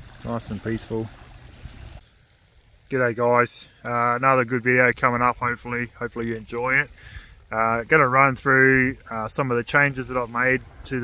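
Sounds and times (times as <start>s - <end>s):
small waves lapping: 0.0s - 11.0s.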